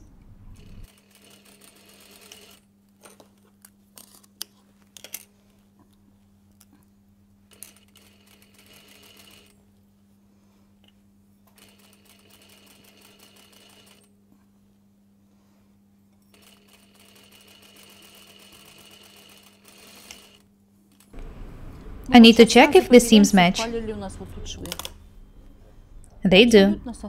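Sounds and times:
steady low hum: 0:00.0 - 0:00.9, 0:20.4 - 0:27.0
sewing machine stitching: 0:00.6 - 0:02.6, 0:07.5 - 0:09.6, 0:11.5 - 0:14.1, 0:16.3 - 0:20.4.

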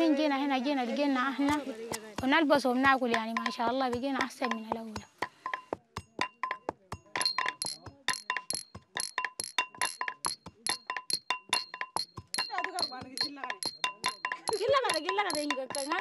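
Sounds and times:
pestle pounding in wooden mortar: 0:01.4 - 0:16.0
porcelain cups clinking: 0:07.2 - 0:16.0.

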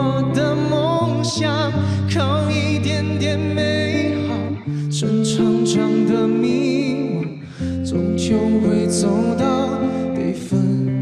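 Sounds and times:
man singing pop ballad: 0:00.0 - 0:11.0.

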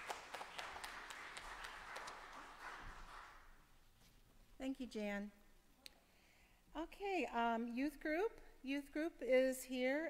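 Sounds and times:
faint scattered applause: 0:00.0 - 0:03.6.

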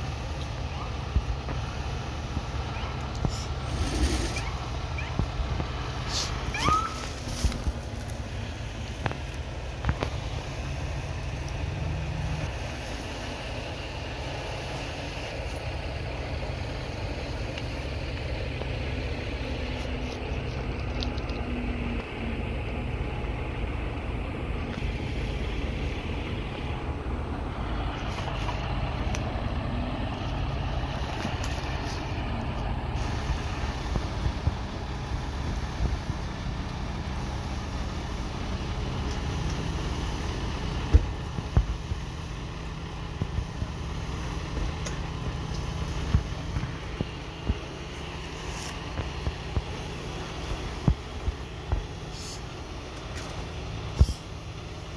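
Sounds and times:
large vehicle engines idling: 0:00.0 - 0:54.9.

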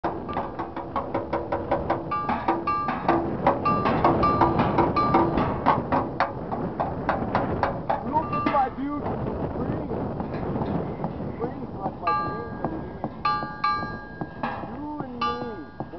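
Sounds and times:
metal ringing: 0:00.0 - 0:09.0, 0:12.0 - 0:15.9
beating on scrap metal: 0:00.0 - 0:09.5, 0:10.2 - 0:15.9.

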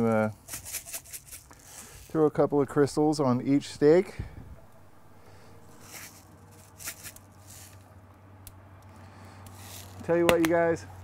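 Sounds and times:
low steady hum: 0:02.0 - 0:08.6.

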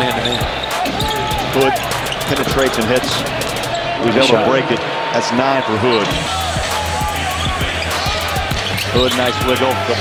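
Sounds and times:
low arena music: 0:00.0 - 0:05.0, 0:05.6 - 0:10.0.

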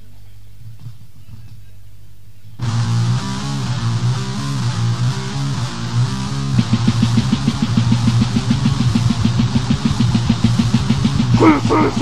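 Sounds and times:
death metal band instrumental: 0:02.6 - 0:12.0
fast even drumbeat: 0:06.5 - 0:12.0.

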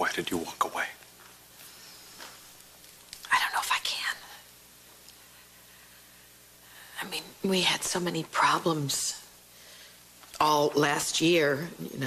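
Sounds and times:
person whispering: 0:03.2 - 0:04.4.

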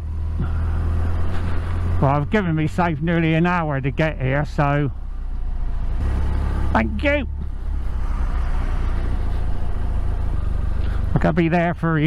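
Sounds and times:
motorcycle engine drone: 0:00.0 - 0:12.0
wind and tyre noise: 0:00.0 - 0:12.0.

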